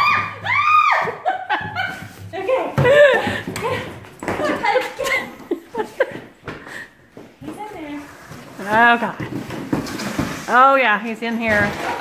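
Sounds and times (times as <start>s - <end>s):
people laughing: 1.0s - 2.2s, 2.8s - 6.3s.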